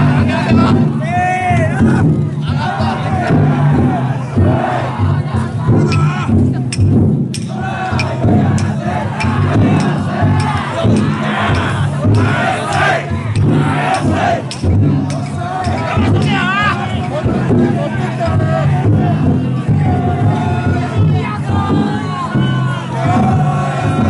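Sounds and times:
crowd shouting and calling out: 0.0s - 24.0s.

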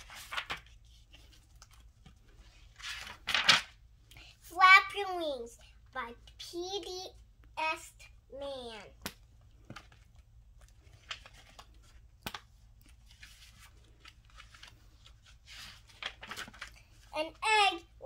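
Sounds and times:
book pages rustling: 0.0s - 3.8s, 9.0s - 17.8s.

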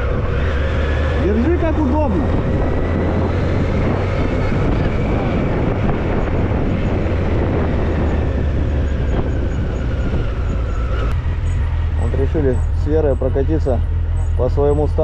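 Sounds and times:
motorcycle engine running: 0.0s - 15.0s
road noise: 0.0s - 15.0s.

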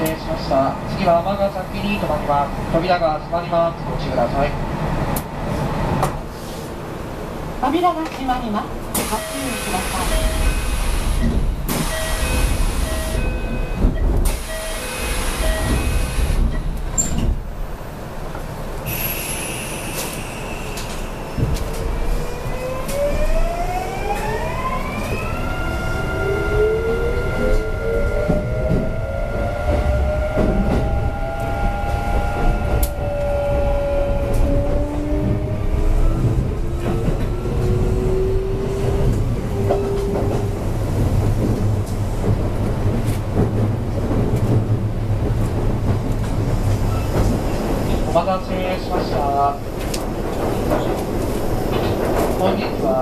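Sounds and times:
wheels rumbling on rail: 0.0s - 53.0s
rail clicks: 7.9s - 18.9s, 19.9s - 26.3s, 27.0s - 53.0s.

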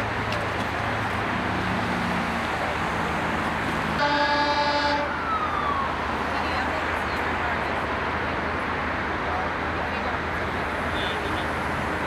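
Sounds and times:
freeway traffic: 0.0s - 12.0s
emergency vehicle horn: 3.9s - 6.1s.

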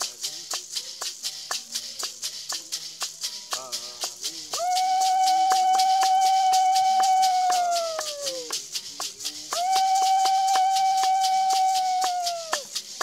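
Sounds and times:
maracas shaken: 0.0s - 13.0s
long held high notes: 4.6s - 8.5s, 9.5s - 12.6s.

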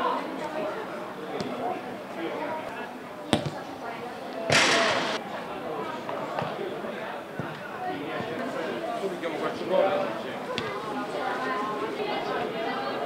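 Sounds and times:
distant players' voices: 0.2s - 12.8s
ball kick: 3.3s - 3.6s, 4.5s - 5.2s.

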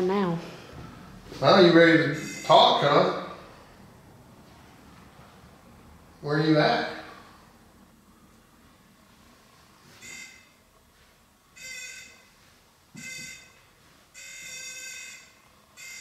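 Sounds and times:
detector buzzing alert tones: 2.0s - 2.8s, 10.0s - 10.6s, 13.0s - 13.6s, 14.2s - 16.0s.

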